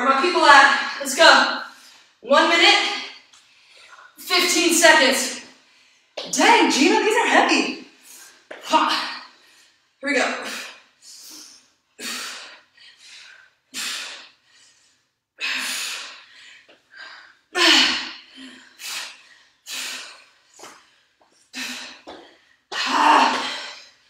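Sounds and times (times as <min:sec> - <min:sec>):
woman grunting: 0:22.7 - 0:23.8.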